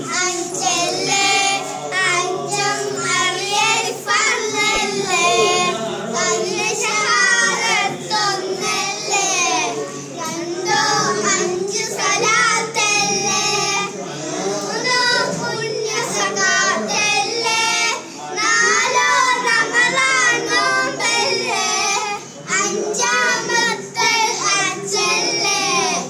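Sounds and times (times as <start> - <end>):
boys singing together: 0.0 - 26.0.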